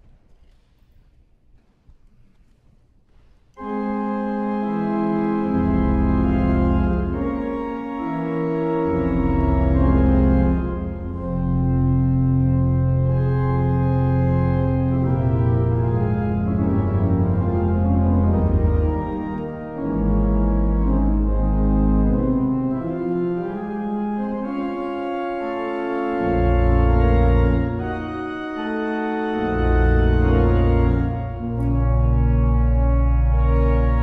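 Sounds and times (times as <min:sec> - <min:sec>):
pipe organ chords: 0:03.5 - 0:34.0
deep pedal bass notes: 0:03.6 - 0:25.2, 0:29.3 - 0:34.0.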